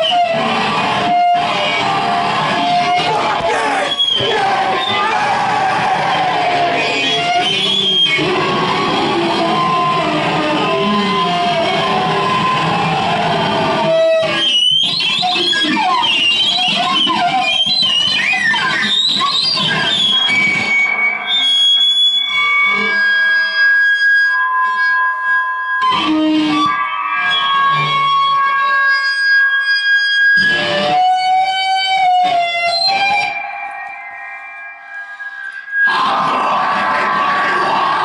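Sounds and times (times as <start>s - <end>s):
distorted noise wall: 0.0s - 38.0s
steady high tones: 32.2s - 37.6s.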